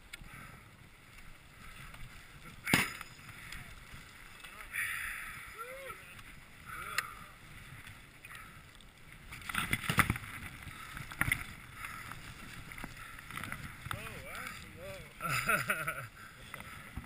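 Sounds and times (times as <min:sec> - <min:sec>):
skis and poles clattering: 0:01.3 - 0:05.0, 0:07.8 - 0:17.0
low voices: 0:03.3 - 0:07.5.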